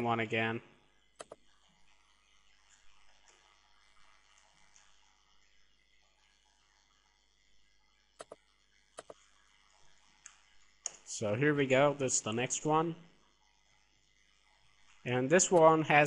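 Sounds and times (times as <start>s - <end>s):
mouse and keyboard clicks: 1.2s - 1.4s.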